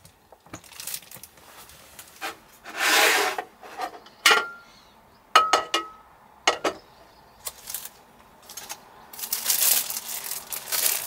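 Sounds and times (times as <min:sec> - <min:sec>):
metal scraping on tabletop: 0:02.2 - 0:04.0.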